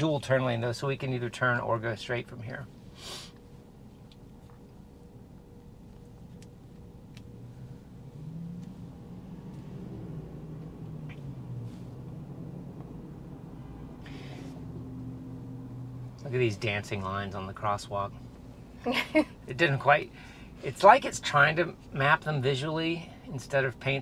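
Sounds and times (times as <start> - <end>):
low rumble of traffic: 0.0 - 24.0
low steady hum: 0.0 - 24.0.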